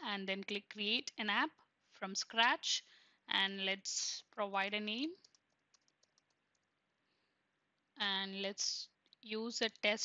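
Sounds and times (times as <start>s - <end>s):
computer keyboard typing: 5.2s - 6.7s.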